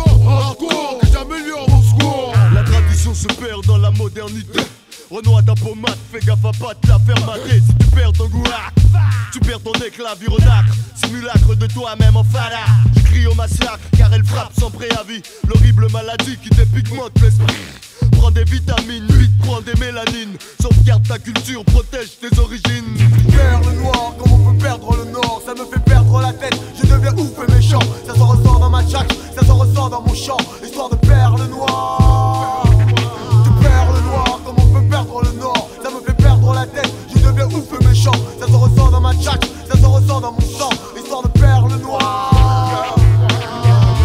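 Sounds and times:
heavy repeating bass line: 0.0 - 4.6, 5.2 - 14.9, 15.5 - 21.8, 22.6 - 44.0
rapping over a hip-hop beat: 0.0 - 44.0.

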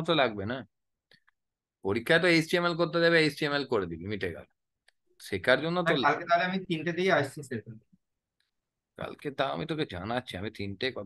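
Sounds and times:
person talking: 5.2 - 7.8.

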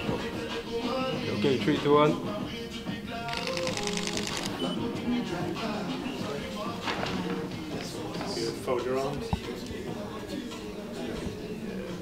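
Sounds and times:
background music: 0.0 - 12.0
camera shutter clicks: 3.3 - 4.6.

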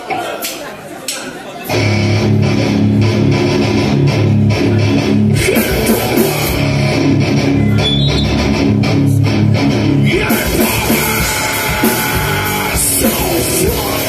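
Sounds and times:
electric guitars and bass riff: 1.7 - 14.0
drums and cymbals: 5.4 - 6.9, 10.2 - 14.0.

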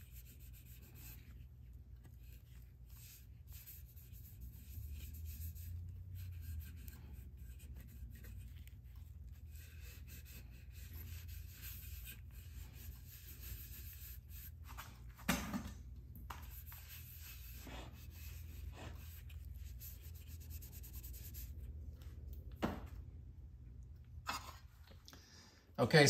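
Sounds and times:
cloth rag rubbing wood: 0.0 - 15.0, 16.3 - 21.7.

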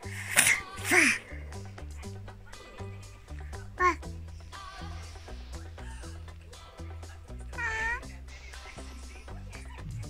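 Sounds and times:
background music: 0.0 - 10.0
baby squealing: 7.6 - 8.1.

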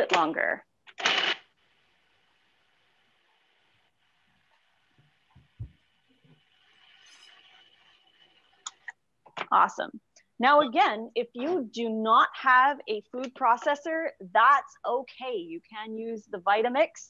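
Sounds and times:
soft knocks: 5.0 - 6.4.

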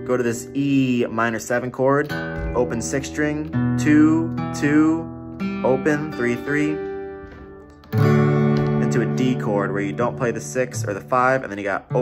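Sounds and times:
acoustic guitar chords strummed: 0.0 - 12.0.

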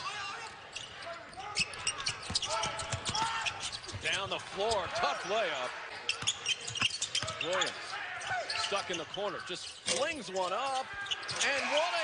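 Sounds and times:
voices in arena: 0.0 - 12.0.

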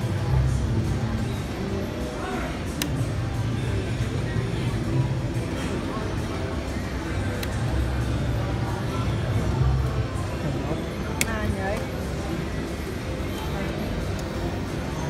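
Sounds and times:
casino background noise: 0.0 - 15.0.

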